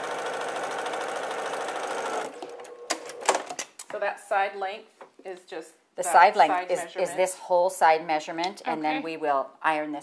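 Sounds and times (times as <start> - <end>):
sewing machine stitching: 0.0 - 3.5.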